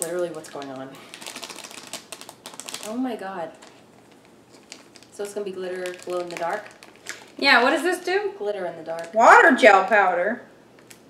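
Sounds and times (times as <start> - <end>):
plastic packet crinkling: 0.0 - 8.0, 8.8 - 9.4.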